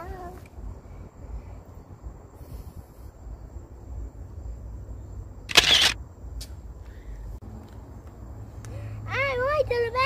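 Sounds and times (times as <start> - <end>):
camera shutter click: 5.5 - 6.0.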